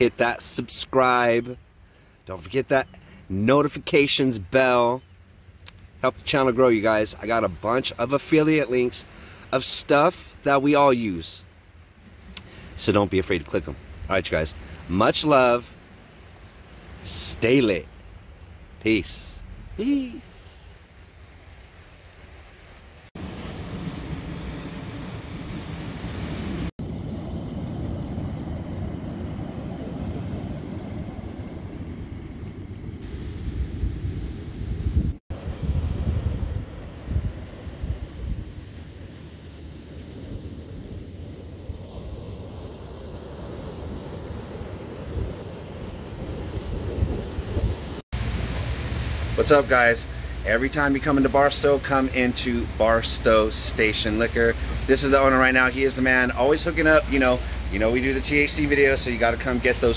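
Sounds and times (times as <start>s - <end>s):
waves washing on rocky shore: 18.7s - 20.9s, 22.1s - 32.0s
wind buffeting microphone: 23.2s - 48.9s.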